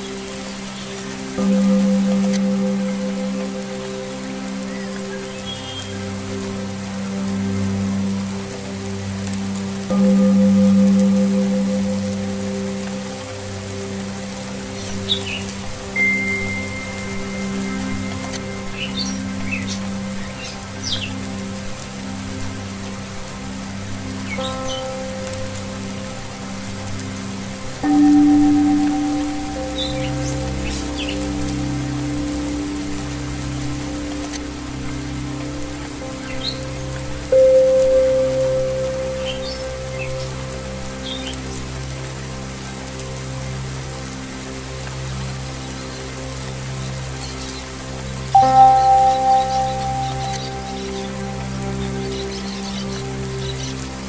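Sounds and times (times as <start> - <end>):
low wavering drone: 0.0 - 54.0
steady rain: 0.0 - 54.0
singing bowl tones: 14.9 - 20.1, 27.7 - 34.6, 48.3 - 52.2
bird chirps: 48.4 - 51.2.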